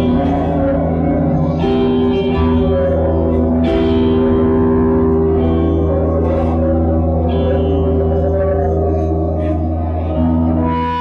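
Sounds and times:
low bass drone: 0:00.0 - 0:11.0
reverb-soaked electric guitar chords: 0:00.0 - 0:11.0.

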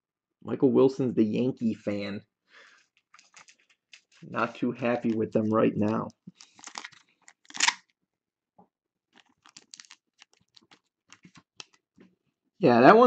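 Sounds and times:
plastic sleeve rustling: 0:02.7 - 0:07.9, 0:09.1 - 0:12.0
plastic sleeve crinkling: 0:02.8 - 0:07.9, 0:09.1 - 0:12.0.

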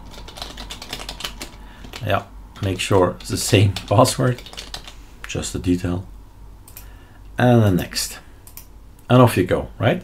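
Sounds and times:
keyboard typing: 0:00.0 - 0:02.1, 0:02.7 - 0:05.0.

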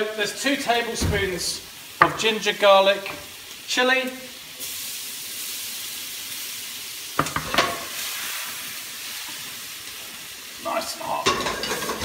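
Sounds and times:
food sizzling in a pan: 0:00.0 - 0:12.0
metal pan clanks: 0:11.2 - 0:12.0.

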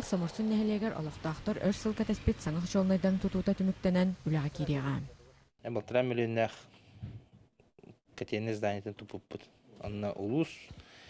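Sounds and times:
man speaking: 0:05.1 - 0:06.7, 0:08.2 - 0:10.7.

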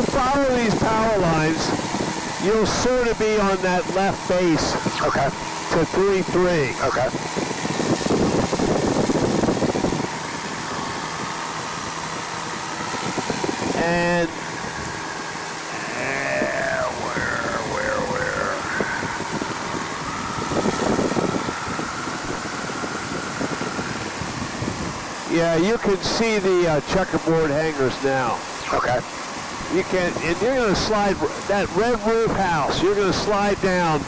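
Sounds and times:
wind noise in cabin: 0:00.0 - 0:26.0
light aircraft engine drone: 0:00.0 - 0:34.0
wavering tones: 0:14.2 - 0:24.2.

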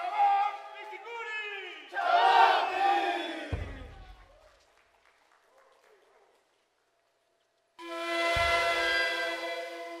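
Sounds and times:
group of voices shouting: 0:01.9 - 0:03.7
panpipes and drum music: 0:07.8 - 0:10.0.

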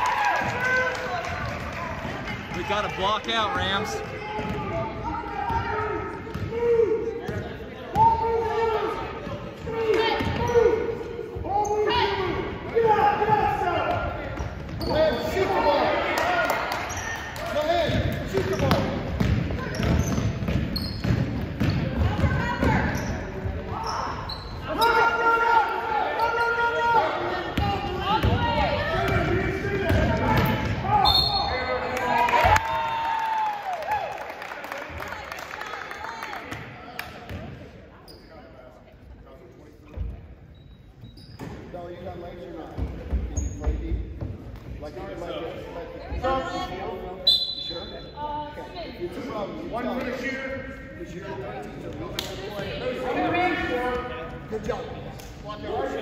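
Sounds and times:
voices calling out in gym: 0:00.0 - 0:56.0
basketball bouncing: 0:06.2 - 0:06.6, 0:17.9 - 0:22.9.

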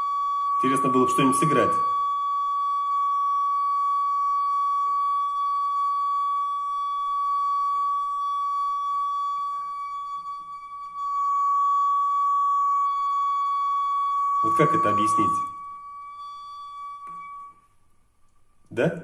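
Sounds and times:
steady high resonant hum: 0:00.0 - 0:19.0.

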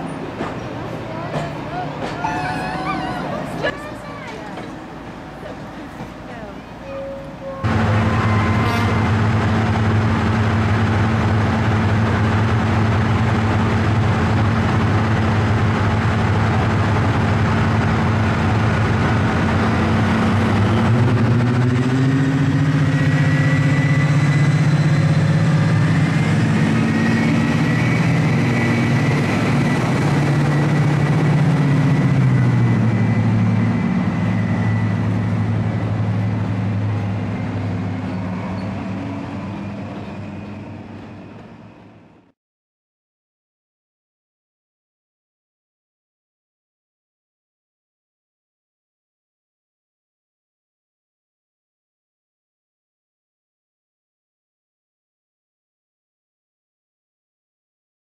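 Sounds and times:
diesel locomotive engines running: 0:00.0 - 0:42.4.

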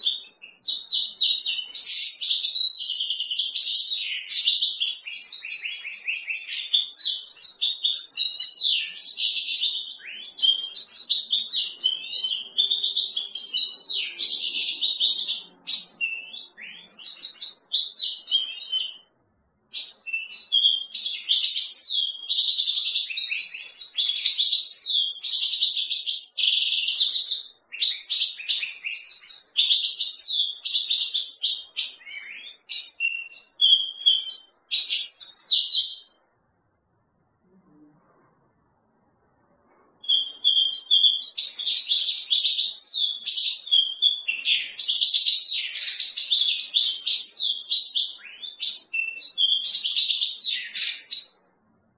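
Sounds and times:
goldfinch twittering song: 0:00.0 - 0:19.1, 0:40.0 - 0:51.4.

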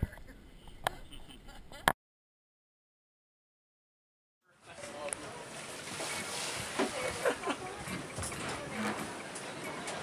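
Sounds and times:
faint voices: 0:04.5 - 0:10.0
sea noise: 0:04.6 - 0:10.0.

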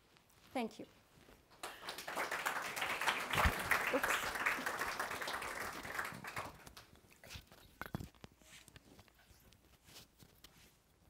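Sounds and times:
audience applauding: 0:01.5 - 0:06.9.

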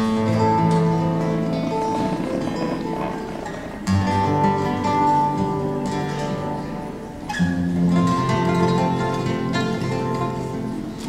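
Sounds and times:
two nylon-string guitars playing: 0:00.0 - 0:11.0.

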